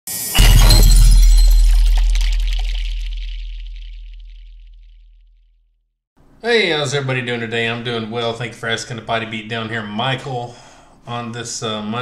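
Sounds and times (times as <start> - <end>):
glass shattering crash: 0.1 - 4.9
deep boom hit: 0.3 - 5.2.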